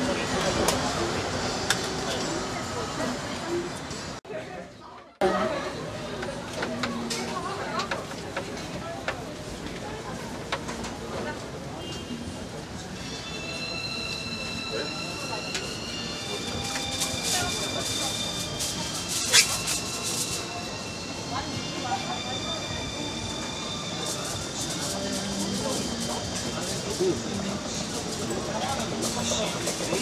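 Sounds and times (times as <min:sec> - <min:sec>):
thin high whines: 0:13.0 - 0:28.2.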